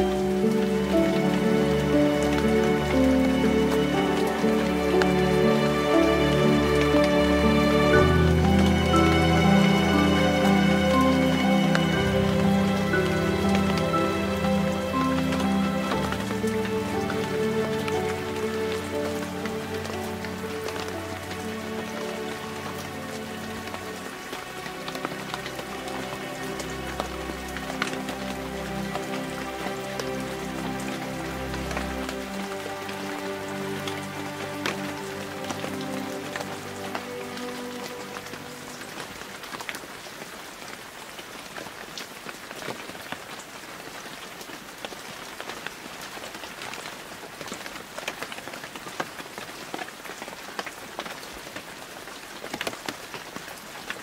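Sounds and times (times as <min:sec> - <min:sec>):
soft meditation music: 0:00.0 - 0:40.8
steady rain falling: 0:00.0 - 0:54.0.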